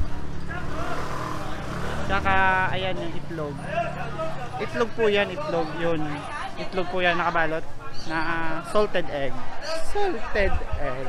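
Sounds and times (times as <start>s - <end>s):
motor vehicle running: 0.0s - 6.5s
faint voices: 0.0s - 11.0s.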